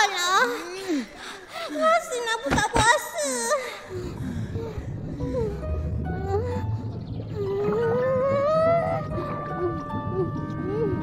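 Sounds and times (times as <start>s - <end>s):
low rumble: 3.9s - 11.0s
warbling gliding tones: 4.5s - 11.0s
long rising tone: 4.6s - 11.0s.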